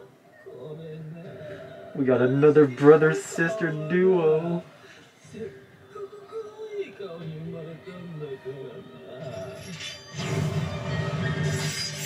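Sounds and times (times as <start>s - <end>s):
background music: 1.9s - 12.0s.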